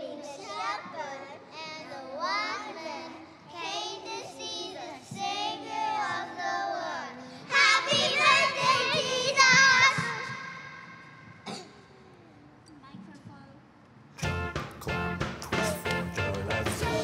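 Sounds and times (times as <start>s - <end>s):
young children singing: 0.0s - 11.6s, 15.4s - 17.0s.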